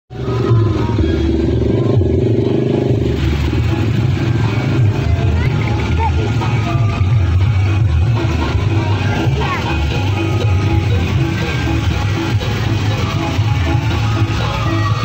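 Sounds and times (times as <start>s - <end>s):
crowd voices: 0.1s - 15.0s
loud music over sound system: 0.1s - 15.0s
vehicle engine running: 0.1s - 15.0s.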